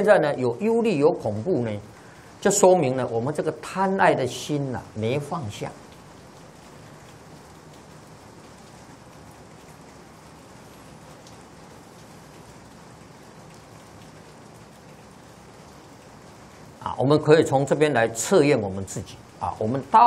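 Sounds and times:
room tone hiss: 0.0s - 20.0s.

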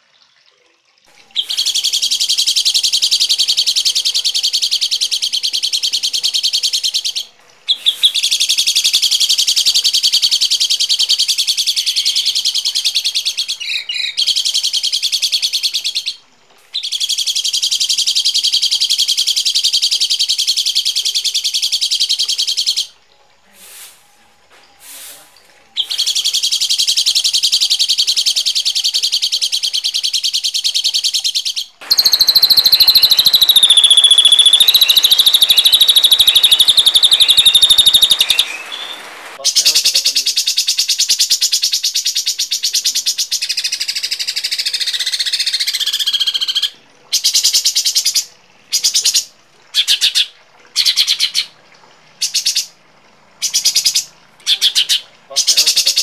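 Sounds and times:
harsh rasping songbird calls: 1.3s - 16.2s, 28.7s - 51.5s
falling whistle: 31.8s - 39.4s.

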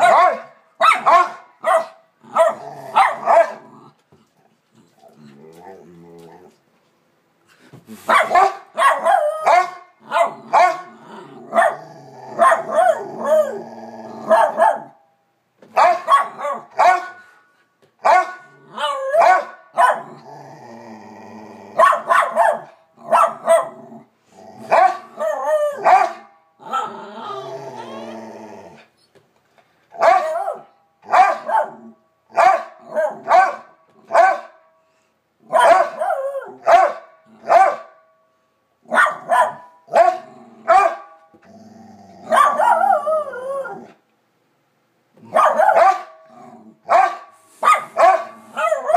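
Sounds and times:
dogs barking: 0.0s - 3.7s, 8.1s - 10.9s, 11.5s - 11.8s, 12.4s - 13.6s, 14.3s - 15.0s, 15.8s - 17.2s, 18.0s - 20.1s, 21.8s - 23.8s, 24.7s - 26.9s, 30.0s - 34.6s, 35.5s - 38.0s, 38.9s - 41.2s, 42.3s - 43.1s, 45.3s - 46.2s, 46.9s - 48.9s
dog drawn-out vocal sounds: 26.6s - 29.0s.

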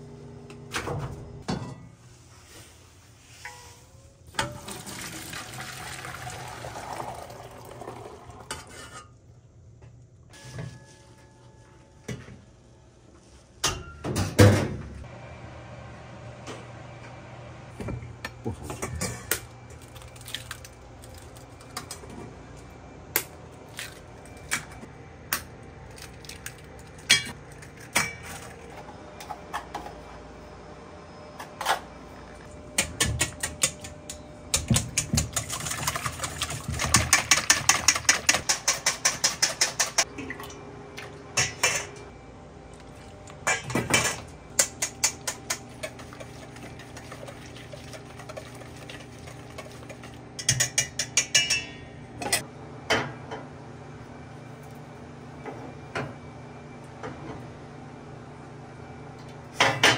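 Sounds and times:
whisk clicking against metal bowl: 35.0s - 40.0s.

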